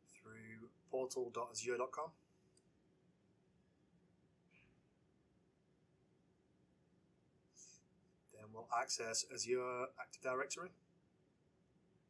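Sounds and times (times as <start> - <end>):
faint click: 4.5 - 4.8.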